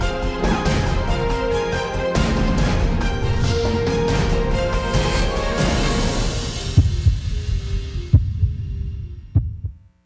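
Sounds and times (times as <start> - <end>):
electronic theme music: 0.0 - 9.4
deep thumps: 6.5 - 9.9.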